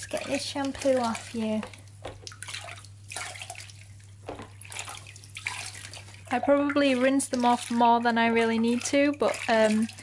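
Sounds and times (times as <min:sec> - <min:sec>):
water splashing in a plastic basin: 0:00.0 - 0:10.0.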